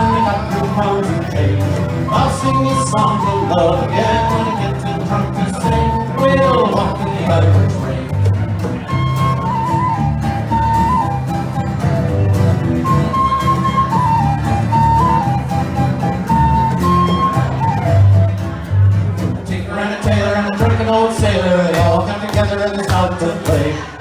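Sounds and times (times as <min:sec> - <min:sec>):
person singing: 0:00.0 - 0:08.3, 0:19.5 - 0:24.0
bass line: 0:00.0 - 0:23.8
strummed acoustic guitar: 0:00.0 - 0:24.0.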